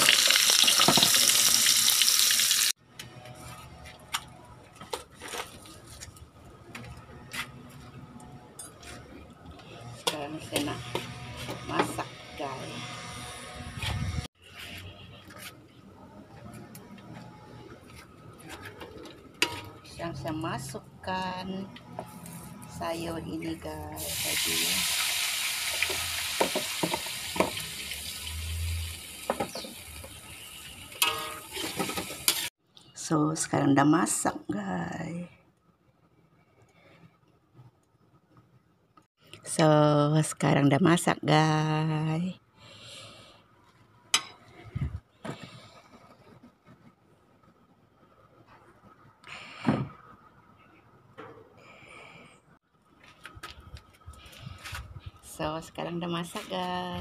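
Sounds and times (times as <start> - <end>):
greens sizzling in hot oil: 0.0 - 2.8, 24.0 - 32.5
spatula scraping a wok: 18.7 - 19.9, 31.0 - 32.5.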